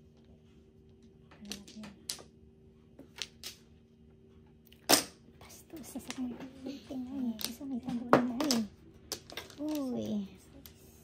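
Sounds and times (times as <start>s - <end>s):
mahjong tiles clacking: 1.4s - 2.3s, 5.8s - 10.9s.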